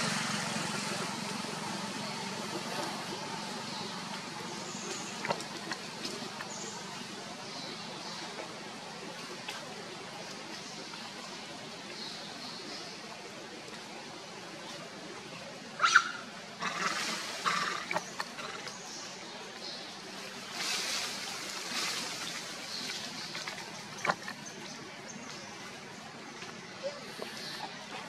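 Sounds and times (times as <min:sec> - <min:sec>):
outdoor background hiss: 0:00.0 - 0:28.0
rustling leaves: 0:00.0 - 0:28.0.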